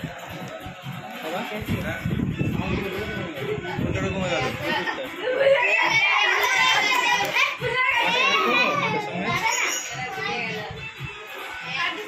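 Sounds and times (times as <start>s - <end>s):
children talking and calling out: 2.4s - 12.0s.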